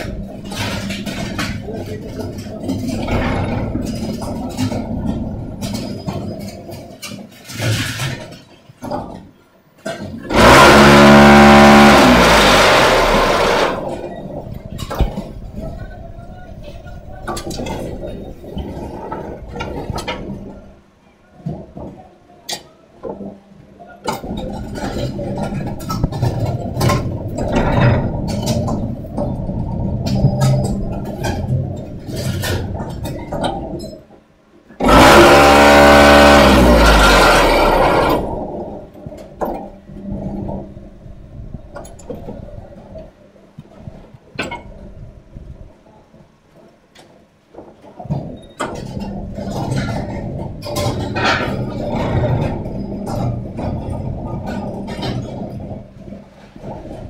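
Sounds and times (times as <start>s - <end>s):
heavy vibrating hum: 0.0s - 7.0s, 10.3s - 20.8s, 34.8s - 46.0s, 48.1s - 57.0s
metallic clanks and knocks: 0.0s - 16.0s, 24.0s - 40.8s, 47.0s - 57.0s
machine rumbling: 0.0s - 22.2s, 23.0s - 57.0s.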